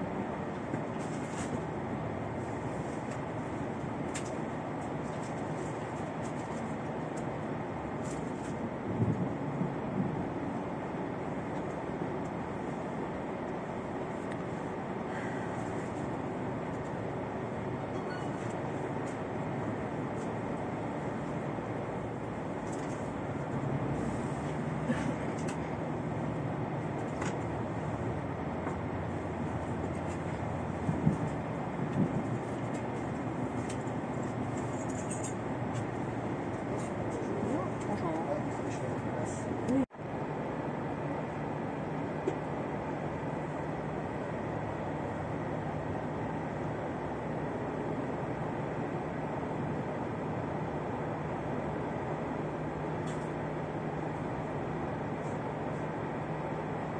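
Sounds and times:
diesel railcar running noise: 0:00.0 - 0:56.9.

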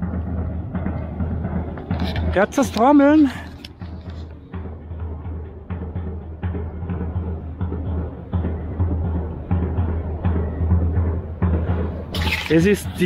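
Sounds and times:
low booming drum strikes: 0:00.0 - 0:13.0.

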